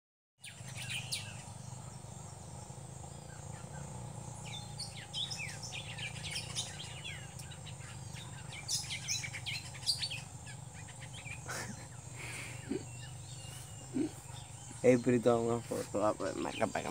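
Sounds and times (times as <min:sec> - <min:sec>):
birds calling and chirping: 0:00.4 - 0:16.9
high thin insect drone: 0:00.4 - 0:16.9.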